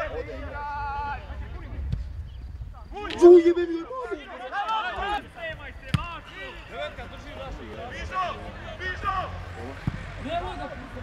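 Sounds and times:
players shouting: 2.8 - 11.0.

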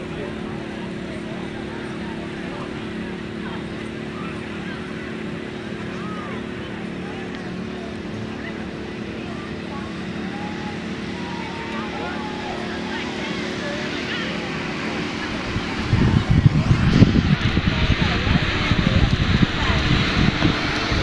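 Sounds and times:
distant crowd voices: 0.0 - 21.0
engine running: 0.0 - 21.0.

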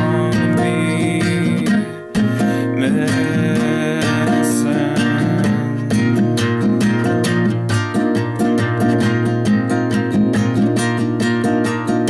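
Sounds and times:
person singing: 0.0 - 6.7
acoustic guitar strumming chords: 0.0 - 12.0.

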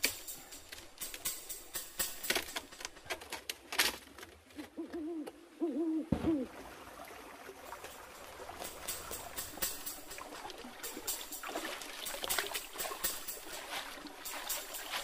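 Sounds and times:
water trickling: 6.4 - 15.0.

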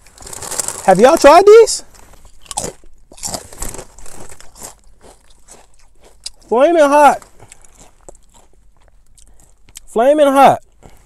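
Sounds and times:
person chewing crisp chips: 0.0 - 10.0, 10.6 - 11.0.

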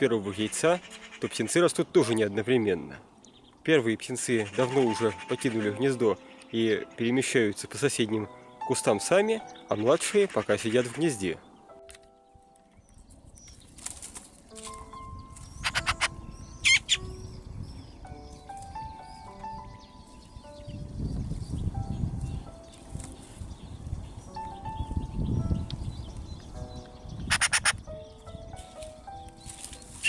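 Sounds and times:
soft background music: 0.0 - 30.0
magpie chattering: 15.5 - 17.2, 27.3 - 27.8.

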